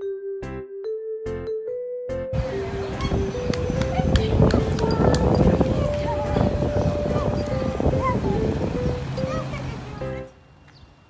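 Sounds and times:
melody of held notes: 0.0 - 10.4
loud outdoor noise: 2.3 - 11.0.

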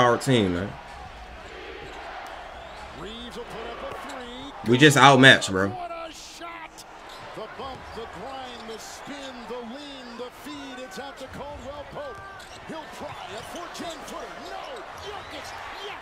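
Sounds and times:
arena crowd noise: 0.0 - 16.0
sneakers squeaking on hardwood: 7.0 - 9.3, 10.9 - 16.0.

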